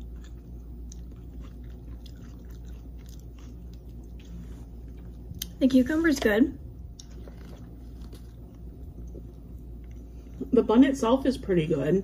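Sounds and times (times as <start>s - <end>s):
person chewing food: 0.0s - 5.6s, 6.6s - 10.5s
steady low hum: 0.0s - 12.0s.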